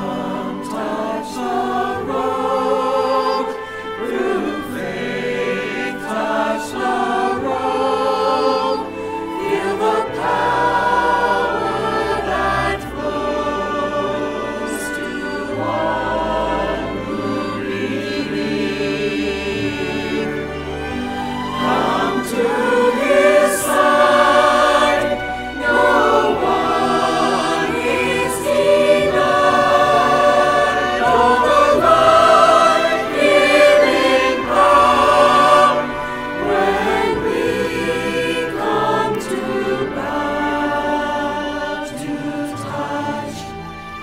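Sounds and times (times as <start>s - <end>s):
mixed choir singing: 0.0s - 44.0s.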